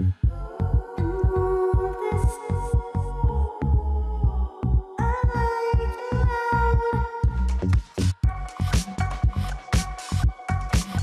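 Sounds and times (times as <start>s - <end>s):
pulsing low bass beat: 0.0s - 11.0s.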